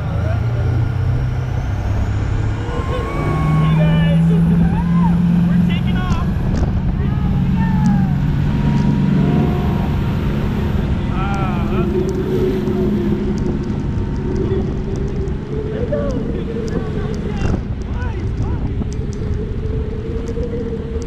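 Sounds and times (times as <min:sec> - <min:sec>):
boat engines running hard: 0:00.0 - 0:21.0
rush of wind and water: 0:00.1 - 0:21.0.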